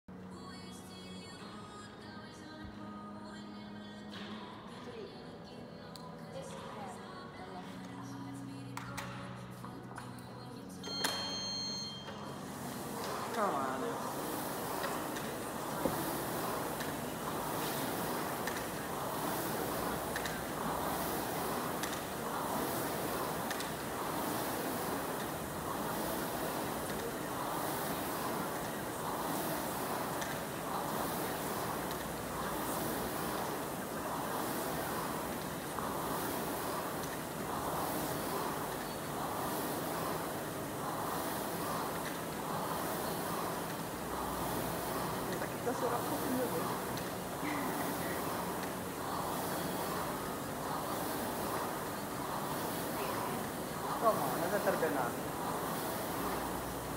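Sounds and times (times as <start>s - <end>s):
rowing machine flywheel whooshing: 10.9s - 56.9s.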